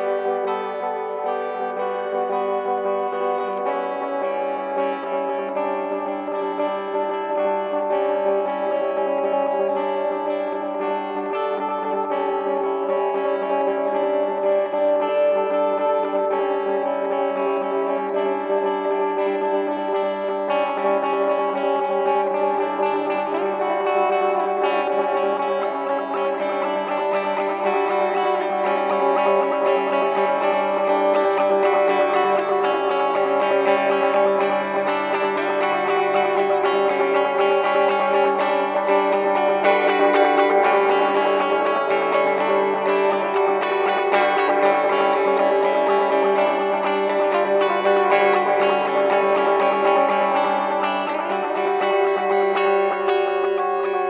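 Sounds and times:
distorted droning guitar: 0.0s - 54.0s.

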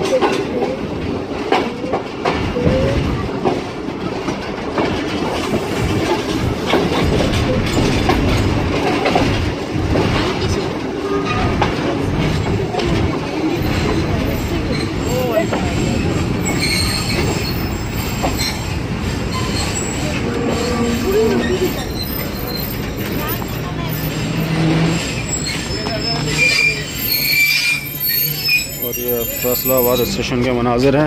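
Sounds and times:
train wheels rolling on rails: 0.0s - 31.0s
train brake squeal: 14.4s - 30.3s.

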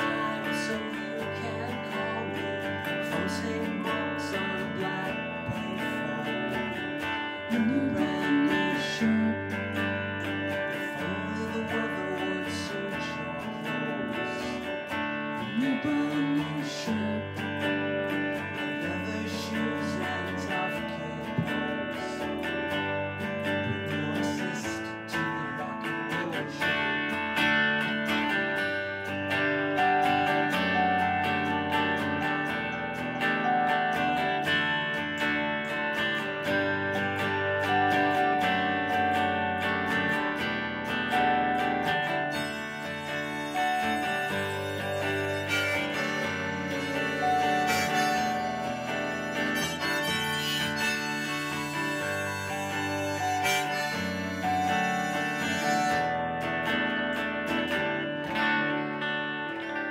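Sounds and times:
electric guitar held notes: 0.0s - 59.9s
live band instrumental music: 27.1s - 40.3s, 41.0s - 59.9s.

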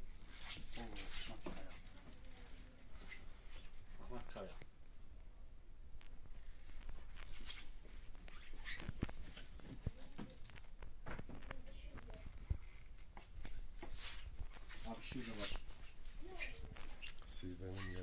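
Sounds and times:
rustling: 6.0s - 18.0s.

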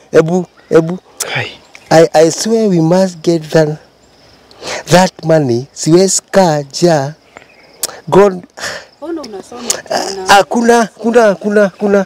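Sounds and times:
insect trilling: 0.0s - 12.0s
man's short vocal sounds: 9.7s - 10.4s.

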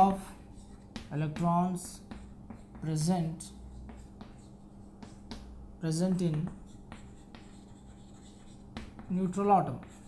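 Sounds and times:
chalk scratching on chalkboard: 0.0s - 10.0s
chalk tapping on chalkboard: 0.0s - 10.0s.

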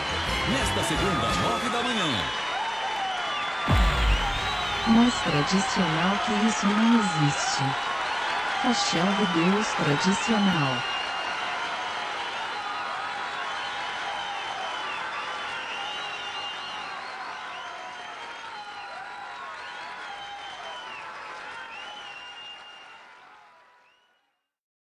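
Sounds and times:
crowd applauding and cheering: 0.0s - 24.2s
shrill whistles: 0.4s - 7.0s, 10.8s - 23.0s.

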